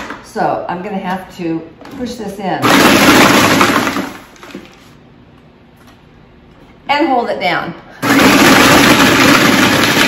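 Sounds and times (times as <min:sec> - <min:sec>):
food processor motor: 0:02.6 - 0:04.2, 0:08.0 - 0:10.0.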